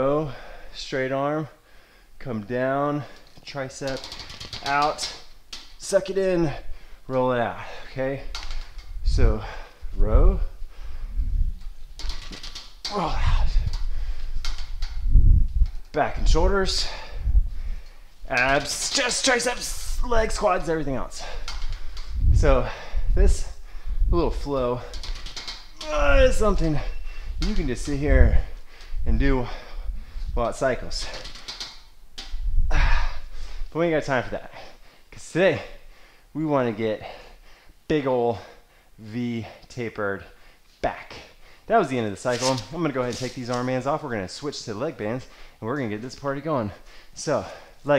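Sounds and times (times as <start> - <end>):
man breathing: 0.2 - 0.8, 1.6 - 2.2, 6.4 - 15.3, 16.7 - 18.3, 21.1 - 24.1, 26.8 - 27.5, 28.2 - 30.4, 32.6 - 33.8, 34.5 - 36.4, 37.0 - 39.7, 40.3 - 40.7, 41.3 - 41.7, 45.3 - 45.6, 46.8 - 47.9
man speaking: 2.2 - 5.2, 5.8 - 8.4, 9.0 - 10.6, 12.9 - 13.8, 15.9 - 17.3, 18.2 - 21.5, 22.3 - 25.0, 25.8 - 31.3, 37.9 - 47.9
metal buckles clicking and rattling: 3.1 - 5.9, 8.2 - 9.0, 11.6 - 16.0, 21.2 - 22.2, 24.8 - 26.0, 30.9 - 32.4.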